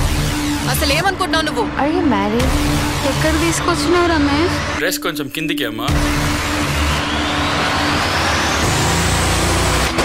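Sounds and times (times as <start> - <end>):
pulsing bass drone: 0.0 - 4.9.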